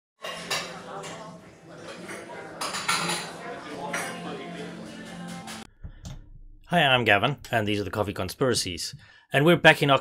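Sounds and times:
crockery and cutlery clinking: 0.2s - 5.7s.

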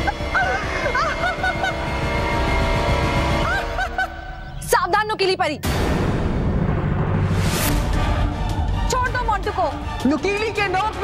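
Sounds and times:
woman cackling laugh: 0.3s - 1.8s.

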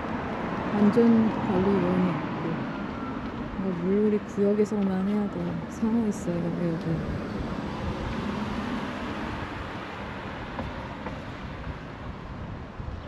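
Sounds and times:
vehicle passing: 0.0s - 12.8s
street noise: 0.0s - 13.0s
wind rumbling on microphone: 0.0s - 13.0s.

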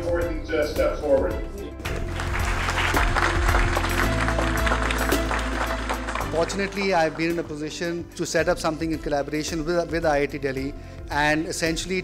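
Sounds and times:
background music: 0.0s - 12.0s
audience applauding: 1.9s - 7.5s.

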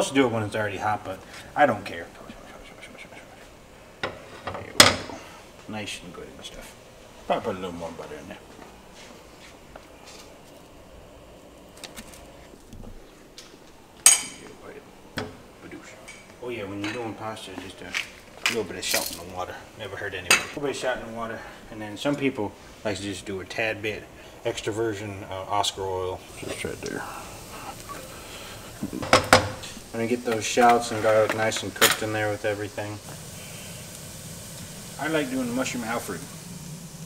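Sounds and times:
garlic sizzling in frying pan: 26.2s - 37.0s.

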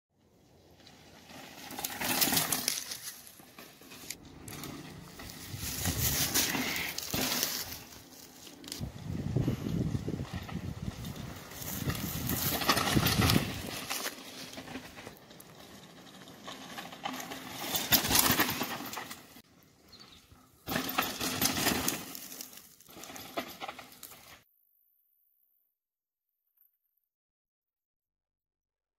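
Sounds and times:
bike tyres skidding on dirt: 0.3s - 24.5s.

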